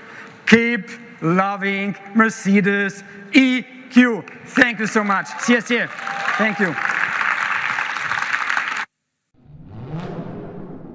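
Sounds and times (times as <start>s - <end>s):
audience applause: 4.6s - 8.9s.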